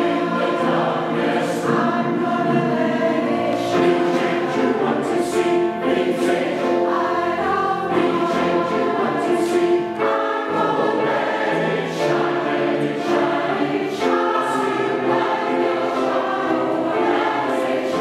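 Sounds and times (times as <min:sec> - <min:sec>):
choir singing in harmony: 0:00.0 - 0:18.0.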